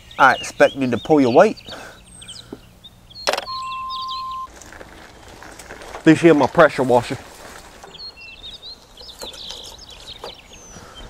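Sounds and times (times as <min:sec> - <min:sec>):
faint bird chirps: 0:00.0 - 0:04.5, 0:07.7 - 0:11.0
electronic beep: 0:03.2 - 0:04.5
phone hang-up click: 0:03.2 - 0:04.5.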